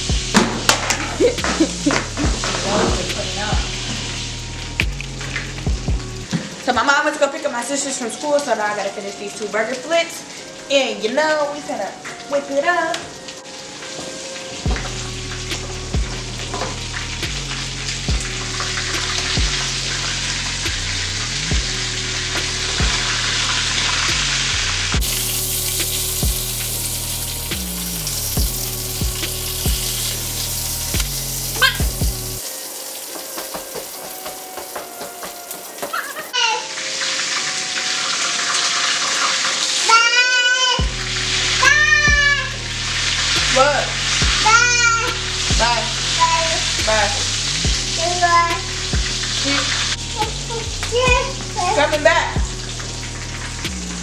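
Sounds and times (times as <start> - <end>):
music with heavy bass line: 0.0 - 6.3, 14.7 - 32.4, 40.8 - 54.0
patties sizzling in a frying pan: 0.0 - 54.0
vocals: 1.2 - 4.0, 6.6 - 13.1, 43.4 - 52.6.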